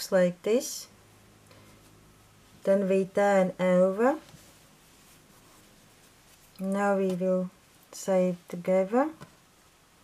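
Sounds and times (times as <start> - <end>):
hands rubbing a knitted hat: 4.0 - 7.8.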